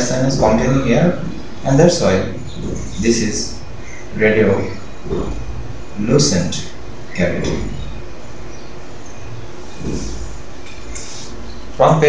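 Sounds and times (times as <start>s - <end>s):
low rumble: 0.0s - 10.7s.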